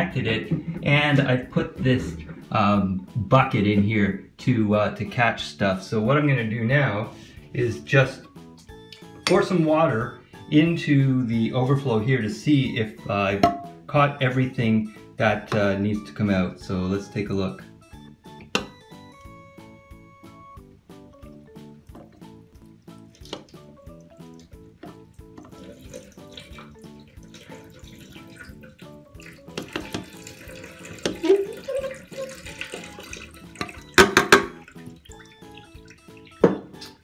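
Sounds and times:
background music: 0.0 - 37.0
water splashing down drain: 21.2 - 37.0.

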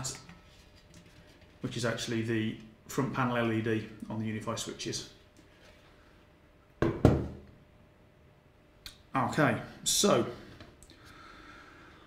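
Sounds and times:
cover knocking on desk: 6.8 - 7.4.

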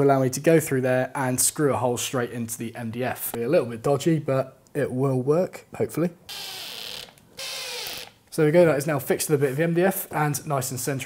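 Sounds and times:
cordless drill driving screws: 6.3 - 8.2.

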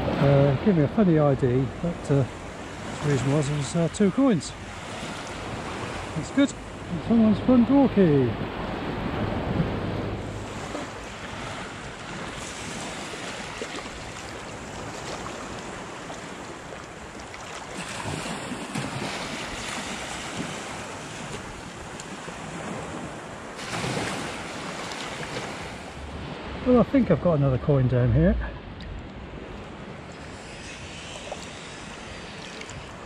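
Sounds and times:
wind noise on microphone: 8.1 - 13.2
water sloshing around legs: 10.4 - 22.1, 29.0 - 33.0.

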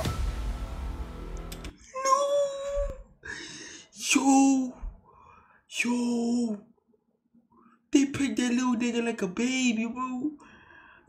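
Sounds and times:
background audio: 0.0 - 6.6.

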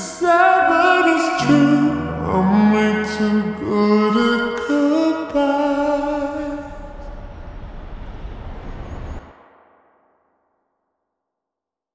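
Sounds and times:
slowed reverbed pop ballad: 0.0 - 7.1
deep bass: 1.1 - 8.0.

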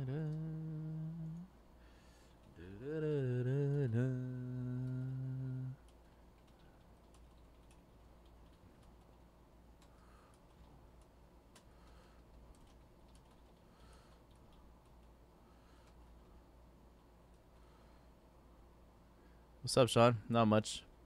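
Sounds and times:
man humming a low note: 0.0 - 1.5, 2.6 - 5.8
typing on computer keyboard: 5.8 - 15.2.

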